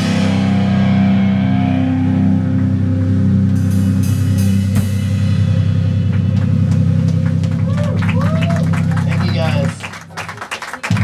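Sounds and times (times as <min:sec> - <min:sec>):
guitar and bass drone: 0:00.0 - 0:10.1
audience whooping and shouting: 0:07.5 - 0:09.8.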